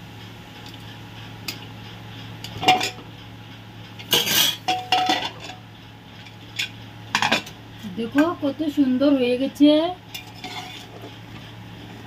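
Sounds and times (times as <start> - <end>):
metal lid clinks and scrapes: 4.1 - 5.6, 10.2 - 11.1.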